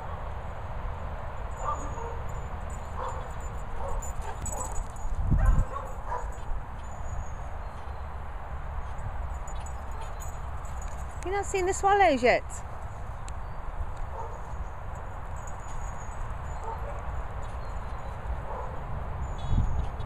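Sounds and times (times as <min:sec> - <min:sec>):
dogs barking: 0:01.6 - 0:04.8, 0:05.4 - 0:06.5, 0:14.1 - 0:14.6, 0:16.5 - 0:17.2, 0:18.4 - 0:18.9
wind rumble on microphone: 0:01.8 - 0:08.1, 0:12.7 - 0:20.0.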